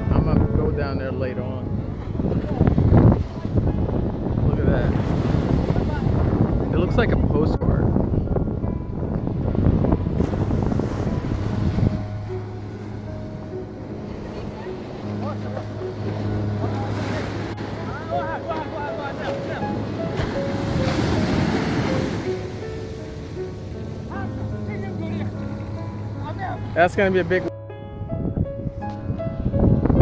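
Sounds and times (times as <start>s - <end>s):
wind buffeting microphone: 0.0s - 30.0s
waves breaking on beach: 1.9s - 6.8s, 9.6s - 27.5s
music with slow held notes: 7.9s - 30.0s.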